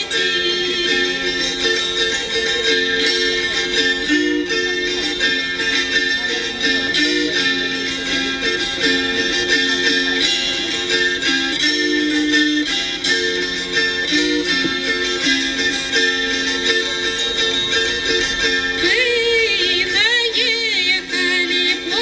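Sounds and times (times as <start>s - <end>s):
psaltery plucked melody: 0.0s - 22.0s
woman singing: 18.8s - 22.0s.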